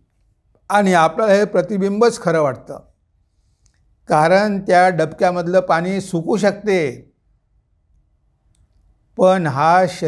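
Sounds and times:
faint clicks: 3.6s - 3.9s, 7.9s - 9.0s.

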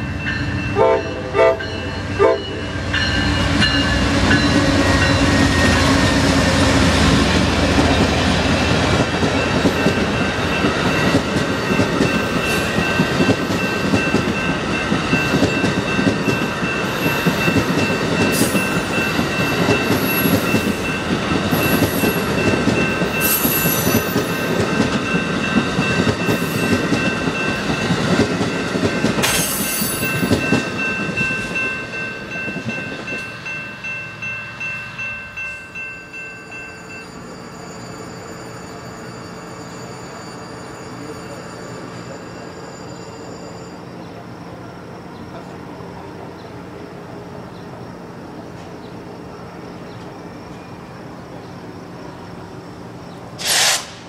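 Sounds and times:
train wheels clicking over rail joints: 7.1s - 33.3s, 53.4s - 54.0s
wheel squeals: 37.0s - 44.1s.

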